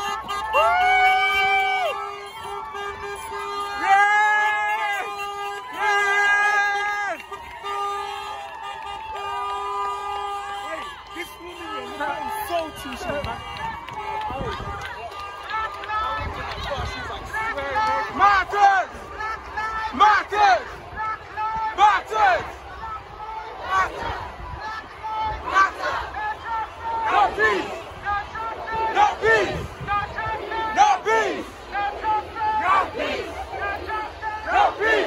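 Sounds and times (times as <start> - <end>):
crowd talking and shouting: 0.0 - 35.0.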